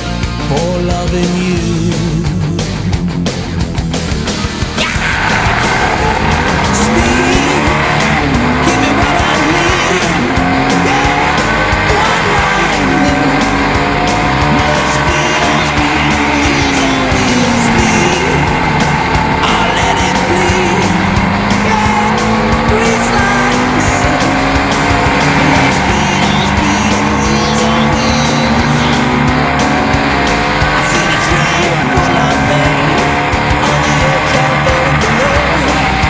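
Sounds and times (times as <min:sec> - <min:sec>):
motorcycle engine at speed: 0:00.0 - 0:36.0
music playing: 0:00.0 - 0:36.0.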